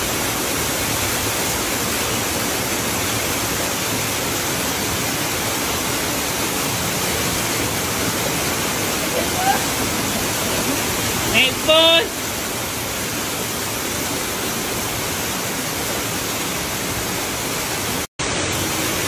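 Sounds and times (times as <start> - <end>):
waterfall rushing over rocks: 0.0 - 19.0.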